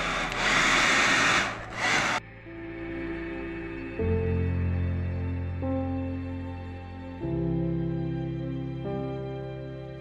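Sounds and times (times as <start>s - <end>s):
hair dryer blowing: 0.0s - 2.2s
background music: 0.0s - 10.0s.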